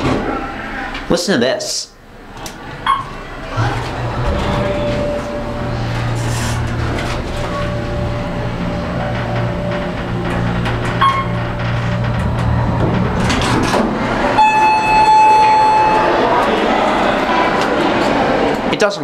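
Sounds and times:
elevator doors sliding open: 0.0s - 1.1s, 2.0s - 18.7s
elevator pump motor humming: 2.0s - 18.7s
sustained chime tone: 4.1s - 11.6s, 14.3s - 16.4s.

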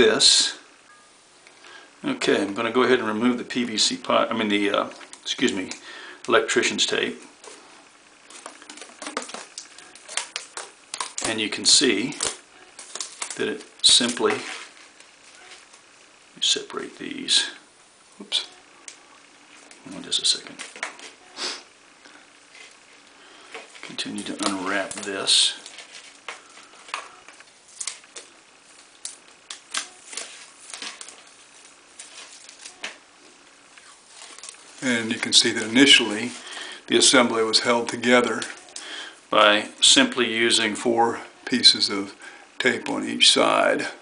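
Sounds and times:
tape peeling with crackles: 7.4s - 16.2s, 23.7s - 36.4s.

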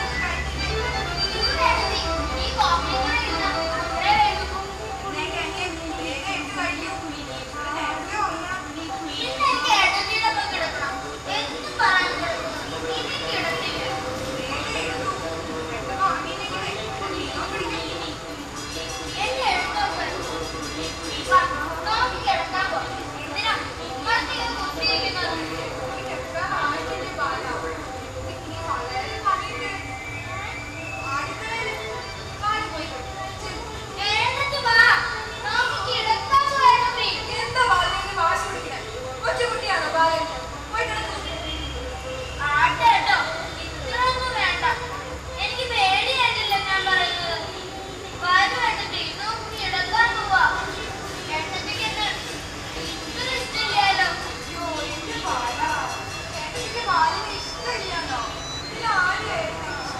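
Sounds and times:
child speaking: 0.0s - 15.2s, 30.5s - 41.4s, 42.4s - 59.9s
woman speaking: 53.2s - 59.9s.

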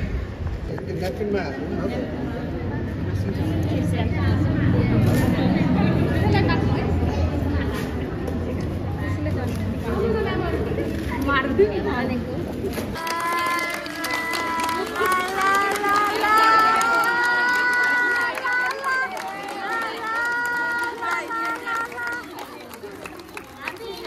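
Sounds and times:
voices: 1.6s - 24.0s
group clapping: 12.9s - 24.0s.

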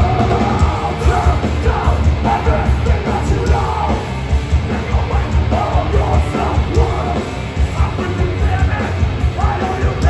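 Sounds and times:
bass guitar: 0.0s - 10.0s
distorted guitars: 0.0s - 10.0s
pounding drums: 0.0s - 10.0s.

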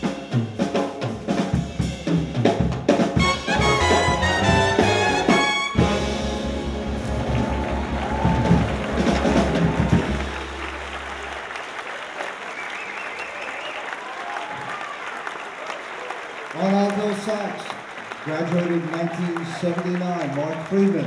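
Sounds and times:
jazz big band final chord: 0.0s - 11.8s
audience applause: 3.2s - 21.0s.

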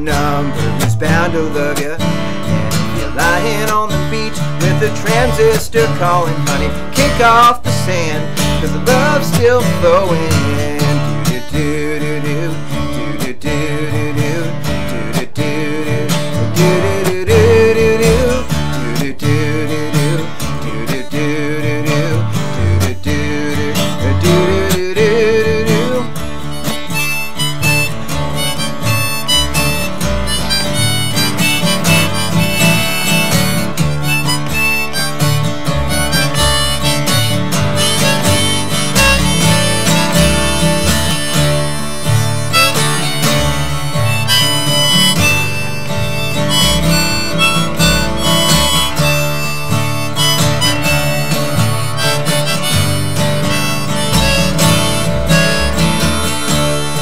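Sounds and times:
harmonica melody: 0.0s - 57.0s
strummed acoustic guitar: 0.0s - 57.0s.

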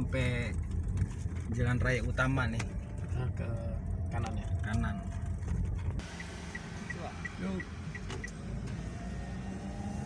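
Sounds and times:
road and engine rumble: 0.0s - 10.0s
turn signal ticking: 2.4s - 8.8s.

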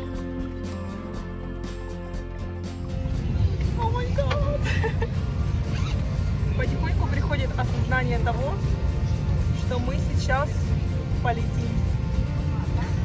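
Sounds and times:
airliner cabin rumble: 2.5s - 13.0s
passengers talking: 3.4s - 13.0s.

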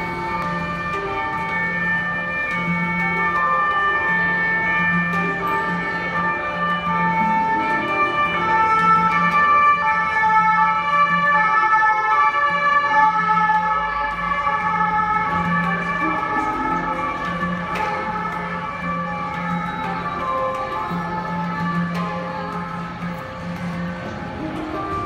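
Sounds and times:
handpan notes ringing: 0.0s - 25.0s.

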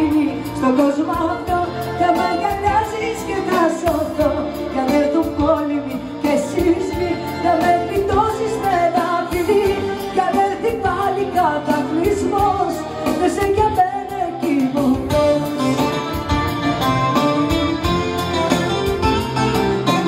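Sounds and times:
woman singing into a microphone: 0.0s - 16.5s
bouzouki: 0.0s - 20.0s
keyboard: 0.0s - 20.0s.

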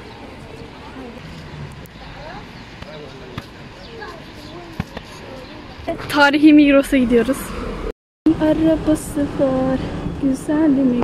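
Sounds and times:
people talking in the street: 0.0s - 11.0s.

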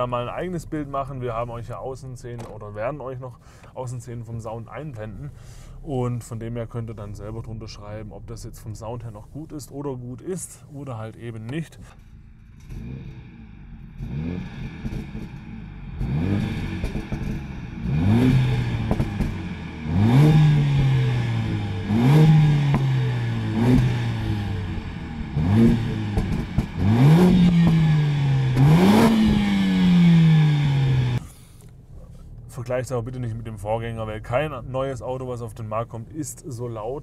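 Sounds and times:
car engine revving: 11.8s - 35.4s.

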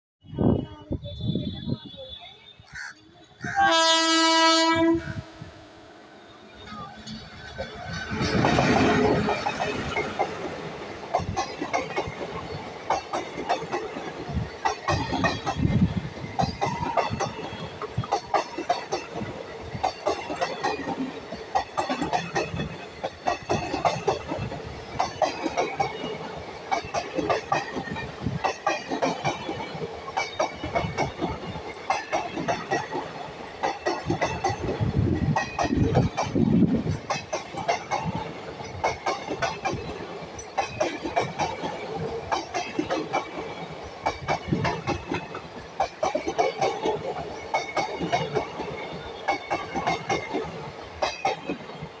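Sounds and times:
train rushing rumble: 2.8s - 52.0s
train wheels clicking over rail joints: 6.5s - 52.0s.

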